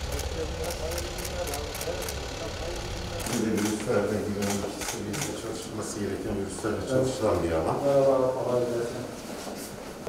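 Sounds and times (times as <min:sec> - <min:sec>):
steady low rumble: 0:00.0 - 0:04.9
indistinct talking voices: 0:00.0 - 0:09.1.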